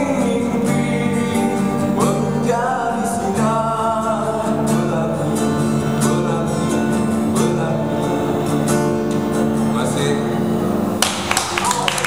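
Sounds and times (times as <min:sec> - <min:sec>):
acoustic guitar chord ringing: 0:00.0 - 0:11.6
audience clapping: 0:11.0 - 0:12.0.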